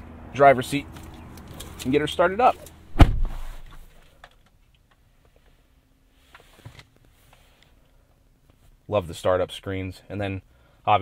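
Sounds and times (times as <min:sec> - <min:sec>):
soft thump: 0:02.9 - 0:03.8.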